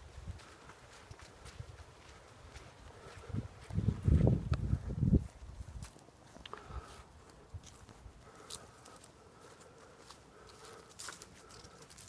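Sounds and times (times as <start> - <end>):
crunch in leaves: 0.0 - 12.0
rustling in dry leaves: 4.8 - 12.0.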